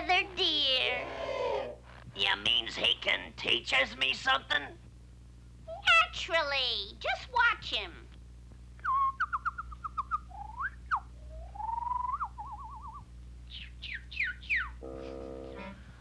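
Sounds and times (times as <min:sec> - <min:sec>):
whistled cartoon bird calls: 0:08.8 - 0:14.8
short buzzy note: 0:14.8 - 0:15.8.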